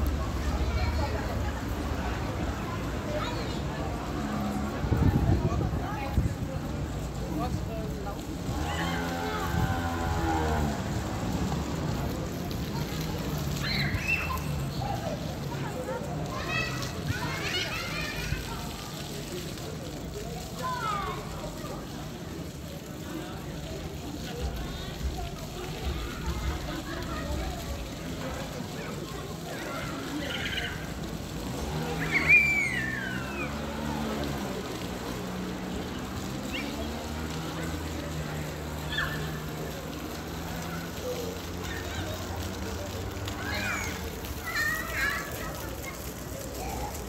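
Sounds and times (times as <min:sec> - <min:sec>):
low traffic hum: 0:00.0 - 0:47.0
street background noise: 0:00.0 - 0:47.0
child squealing: 0:31.9 - 0:33.6.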